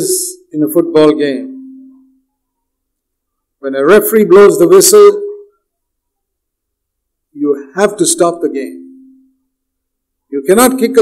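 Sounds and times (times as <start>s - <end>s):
man's voice: 0.0s - 1.6s, 3.6s - 5.4s, 7.4s - 8.9s, 10.3s - 11.0s.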